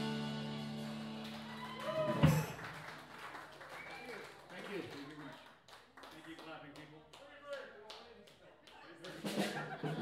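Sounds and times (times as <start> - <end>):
drum kit hits: 2.1 - 2.6.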